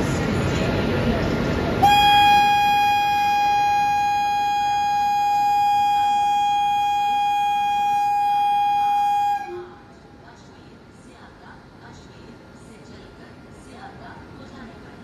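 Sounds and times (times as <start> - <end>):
locomotive air horn: 1.8 - 9.9.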